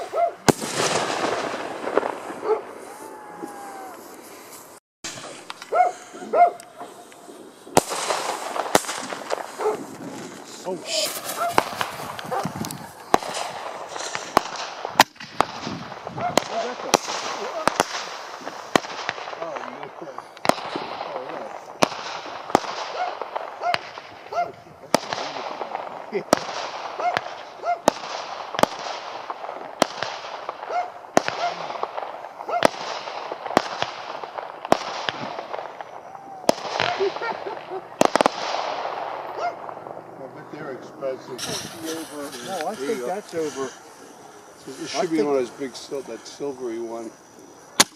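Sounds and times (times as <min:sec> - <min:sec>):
fireworks hissing and crackling: 0:00.0 - 0:47.9
fireworks shots firing: 0:00.0 - 0:47.9.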